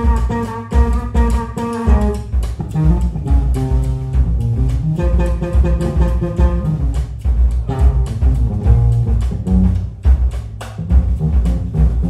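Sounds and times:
drum kit steady beat: 0:00.0 - 0:12.0
electric bass: 0:00.0 - 0:12.0.

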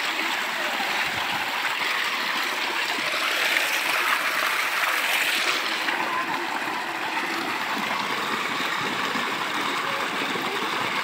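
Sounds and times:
water gushing into a tank: 0:00.0 - 0:11.0.

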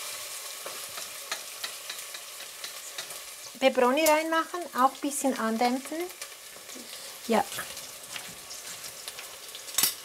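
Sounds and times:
food sizzling in a pan: 0:00.0 - 0:10.0.

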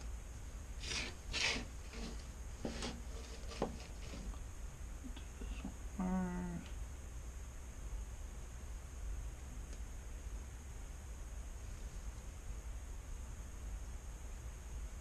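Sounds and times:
low electrical hum: 0:00.0 - 0:15.0
nasal sniffs: 0:00.8 - 0:01.7
person humming: 0:05.1 - 0:06.7.

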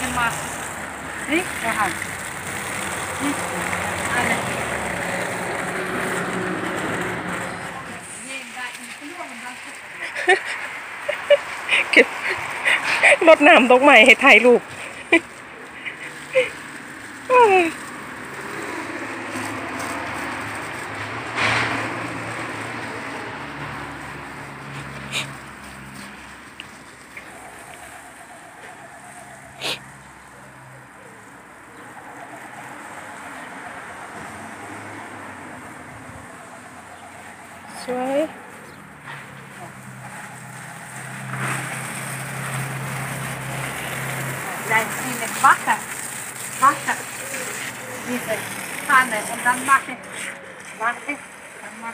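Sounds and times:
garden hose spraying water: 0:00.0 - 0:51.9.

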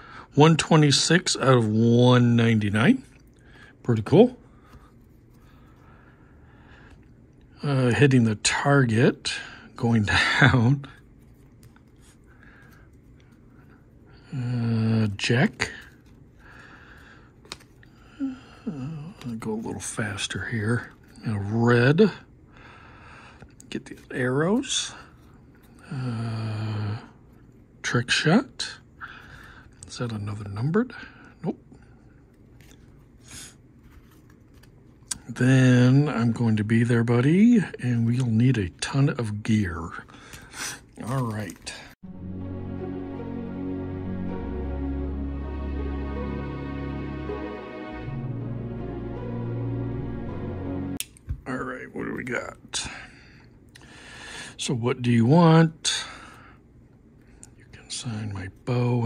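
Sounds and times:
low steady hum: 0:00.0 - 0:59.0
faint card rustles: 0:10.7 - 0:14.3, 0:15.0 - 0:18.0, 0:32.1 - 0:35.4, 0:39.5 - 0:42.0
trading cards being shuffled: 0:33.8 - 0:35.0, 0:40.2 - 0:41.9.

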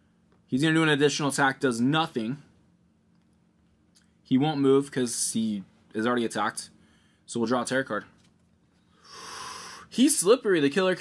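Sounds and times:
man breathing out: 0:08.9 - 0:09.9.

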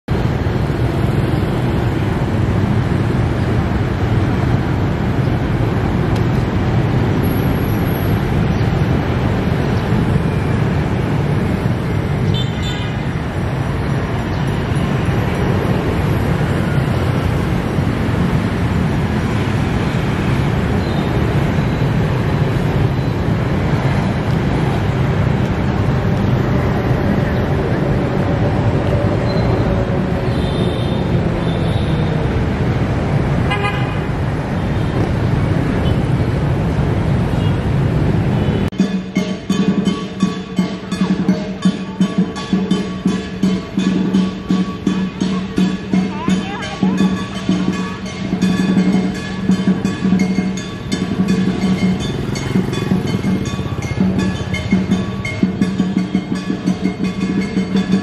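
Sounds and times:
road traffic rumble: 0:00.0 - 0:58.0
brief tone: 0:29.3 - 0:29.6.

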